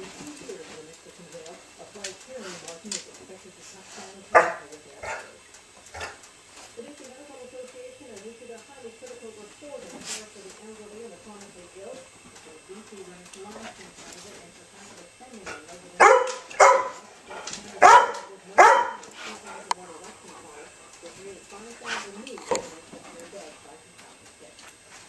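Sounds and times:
dog barking: 4.3s - 5.3s, 5.9s - 6.2s, 16.0s - 19.2s.

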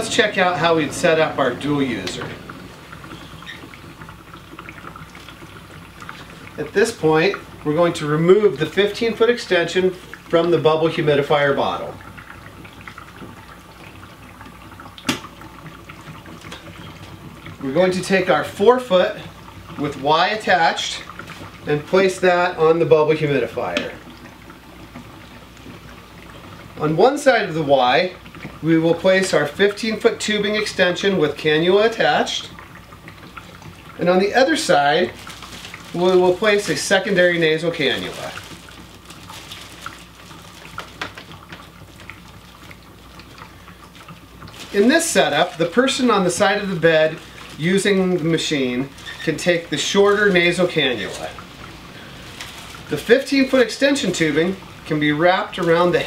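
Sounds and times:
humidifier bubbling: 0.0s - 56.0s
oxygen concentrator humming: 0.0s - 56.0s
plastic packaging crinkling: 34.2s - 56.0s.

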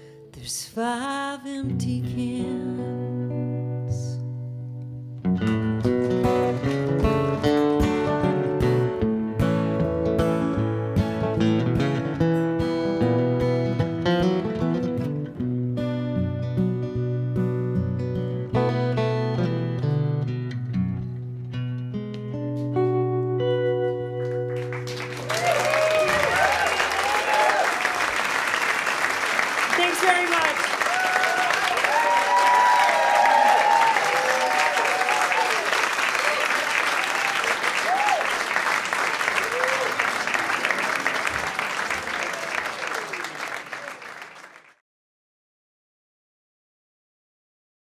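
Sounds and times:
acoustic guitars picking: 1.7s - 25.2s
audience applauding and cheering: 24.2s - 44.8s.

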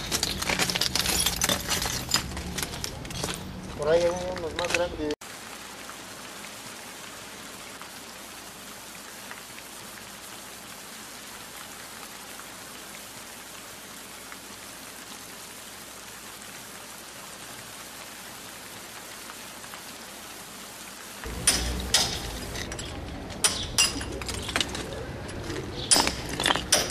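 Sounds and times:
steady rain-like hiss: 0.0s - 26.9s.

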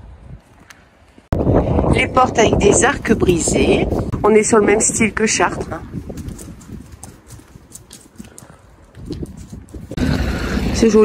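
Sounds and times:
wind rumble on microphone: 0.0s - 11.0s
footsteps on hard paving: 5.9s - 10.0s.

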